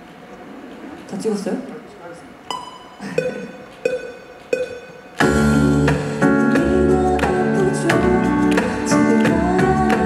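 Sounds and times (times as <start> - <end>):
plucked keyboard notes: 2.5 - 10.0.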